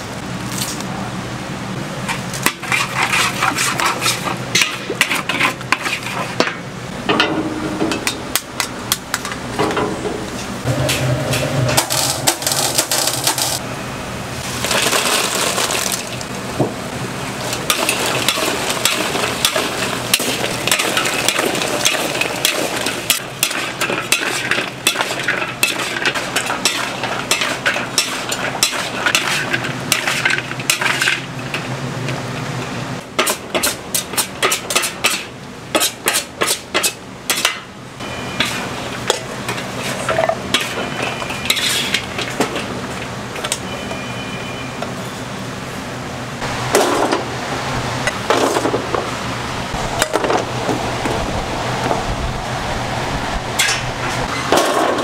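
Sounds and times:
metal spatula scraping a wok: 2.5s - 6.4s, 10.7s - 13.6s, 17.7s - 31.3s, 38.3s - 38.8s, 39.5s - 42.2s.

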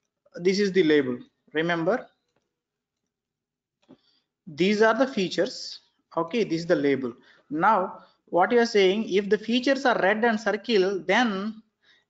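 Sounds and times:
person speaking: 0.4s - 2.0s, 4.5s - 11.6s.

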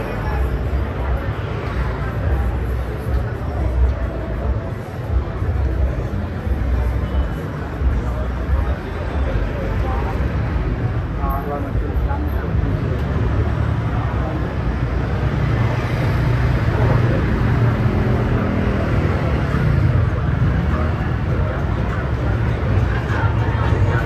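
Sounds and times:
motor scooters and cars passing: 0.0s - 24.0s
people's voices: 0.0s - 24.0s.

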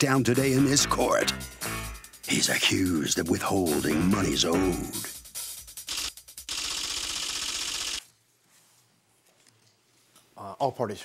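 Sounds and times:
fast mechanical rattle: 5.9s - 8.0s.

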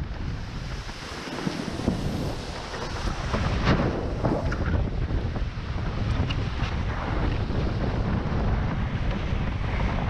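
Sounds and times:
water rushing under board: 0.0s - 10.0s
wind buffeting microphone: 0.0s - 10.0s.

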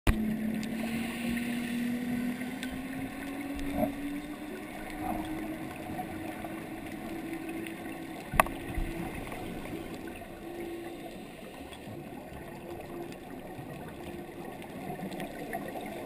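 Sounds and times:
boat engine hum underwater: 0.1s - 16.0s.

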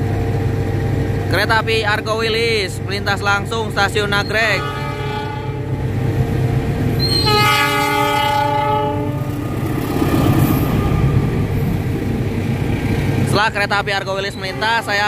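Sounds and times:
diesel locomotive idling: 0.0s - 15.0s
train passing with heavy rumble: 0.0s - 15.0s
diesel locomotive horn: 4.1s - 6.2s, 7.0s - 11.6s, 14.2s - 15.0s.

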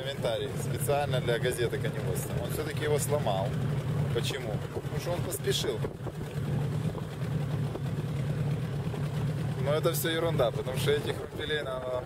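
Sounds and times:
motorboat engine running: 0.0s - 12.0s
water noise: 0.0s - 12.0s
wind: 0.0s - 12.0s.

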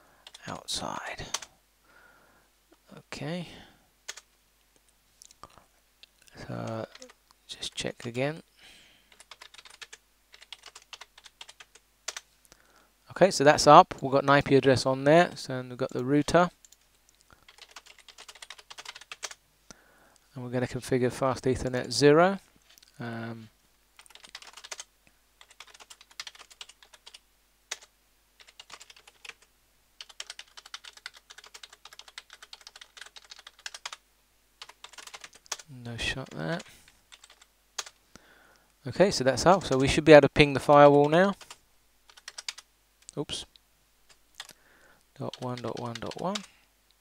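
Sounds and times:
keyboard typing: 6.6s - 7.2s, 9.1s - 12.2s, 17.4s - 19.4s, 24.0s - 34.0s, 34.6s - 38.0s, 40.7s - 42.7s, 45.3s - 46.5s.

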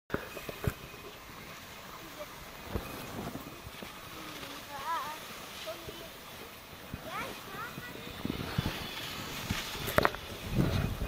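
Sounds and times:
snowboards scraping over snow: 0.1s - 11.0s
wind on microphone: 0.1s - 11.0s.

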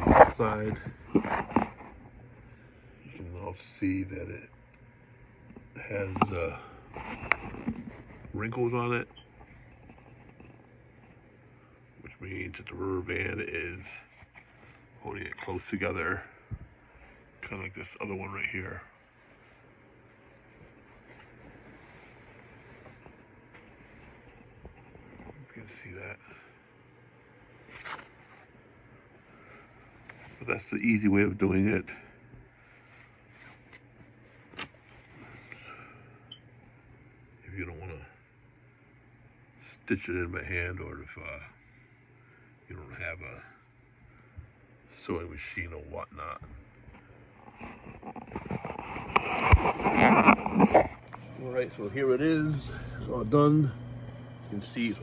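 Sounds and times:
faint low hum: 0.0s - 55.0s
fabric rustling and crackling: 19.0s - 25.4s, 32.6s - 35.4s.

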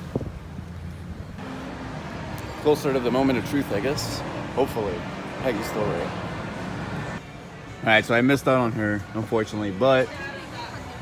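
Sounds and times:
traffic rumble: 0.0s - 7.7s.

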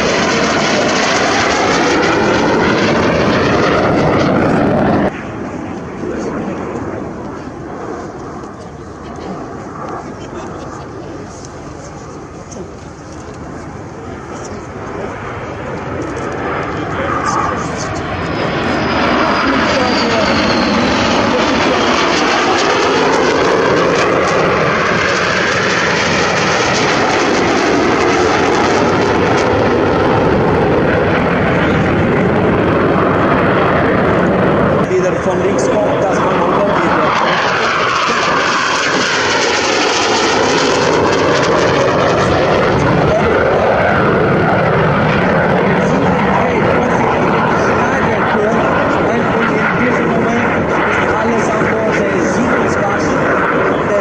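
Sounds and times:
jet engine roar: 0.0s - 54.0s.

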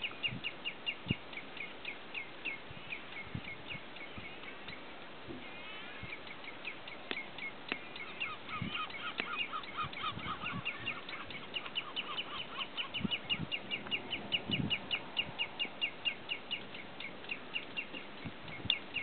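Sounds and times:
lower-pitched bird calls: 0.0s - 19.0s
redshanks calling: 0.0s - 19.0s.

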